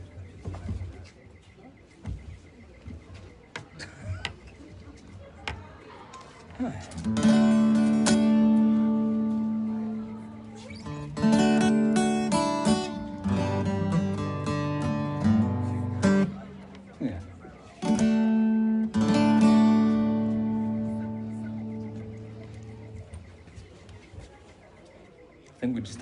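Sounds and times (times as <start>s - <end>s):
acoustic guitar strumming: 6.9s - 23.2s
guitar buzz: 7.0s - 16.9s, 17.8s - 23.0s.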